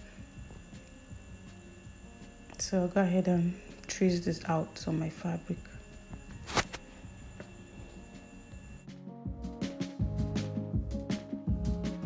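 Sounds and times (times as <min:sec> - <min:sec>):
background music: 0:00.0 - 0:12.0
paper rustling: 0:06.4 - 0:06.8.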